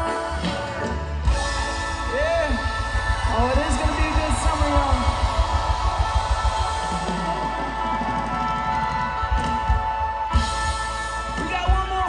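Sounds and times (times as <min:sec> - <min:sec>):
bass guitar: 0:00.0 - 0:12.0
drums with steady beat: 0:00.0 - 0:12.0
electric guitars: 0:00.0 - 0:12.0.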